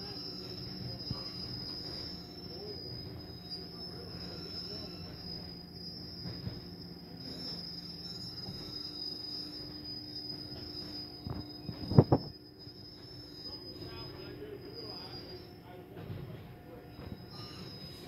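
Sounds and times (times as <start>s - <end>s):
high-pitched whine: 0.0s - 16.0s, 16.7s - 18.0s
car wash machinery rumble: 0.0s - 18.0s.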